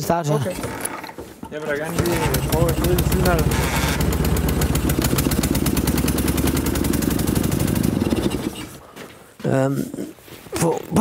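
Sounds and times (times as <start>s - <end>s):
motorcycle engine running: 2.0s - 8.6s.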